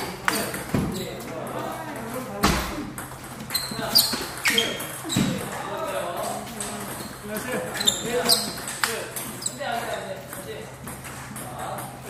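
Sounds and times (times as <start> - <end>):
table tennis ball hits: 2.0 - 5.5.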